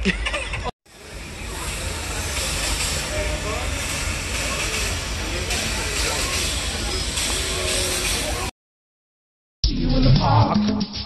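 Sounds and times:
steam locomotive hissing steam: 0:00.9 - 0:08.5
faint voices: 0:01.0 - 0:08.5.

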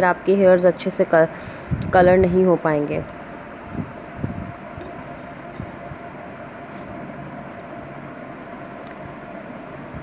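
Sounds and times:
mechanical hum and hiss: 0:00.0 - 0:10.0.

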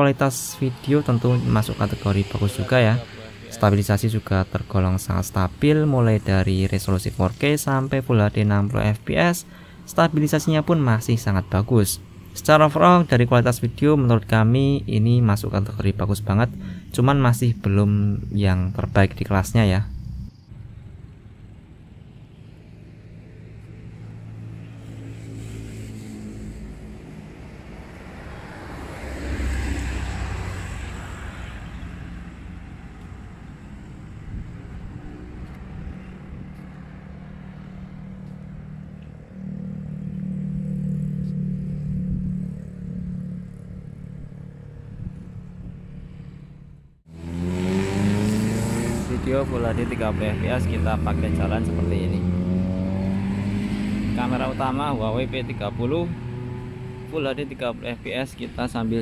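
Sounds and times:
cars passing: 0:00.0 - 0:59.0
motorbikes passing: 0:00.0 - 0:59.0.

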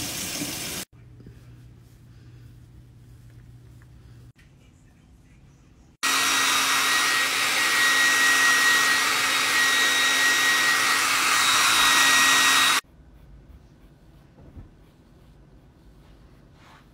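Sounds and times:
hair dryer blowing: 0:06.0 - 0:12.8.

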